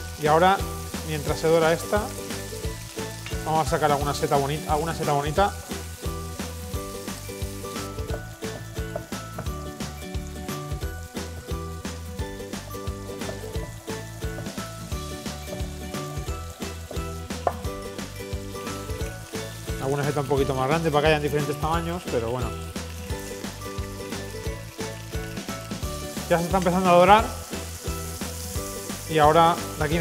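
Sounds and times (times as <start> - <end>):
background music: 0.0 - 30.0
chicken sizzling in oil: 0.0 - 30.0.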